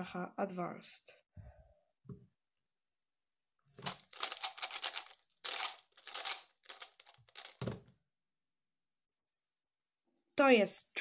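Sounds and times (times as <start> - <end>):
puzzle cube clicking and scraping: 3.8 - 7.7.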